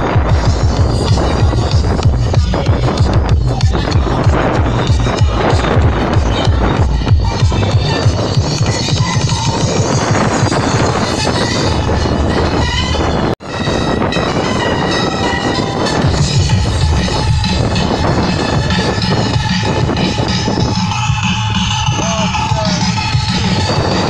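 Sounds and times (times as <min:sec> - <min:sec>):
loud tekno music: 0:00.0 - 0:24.0.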